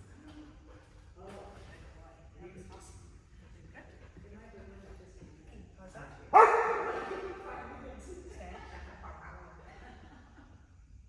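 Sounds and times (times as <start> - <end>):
dog barking with echo: 6.3 - 7.3.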